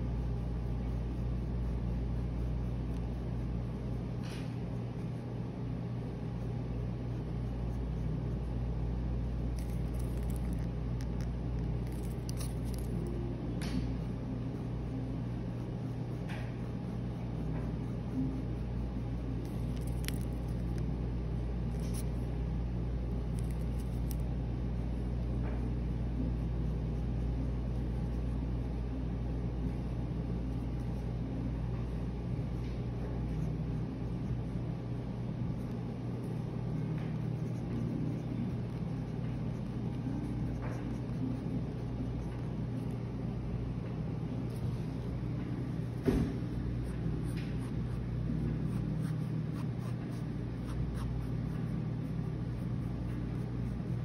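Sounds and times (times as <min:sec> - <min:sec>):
low room hum and rumble: 0:00.0 - 0:54.0.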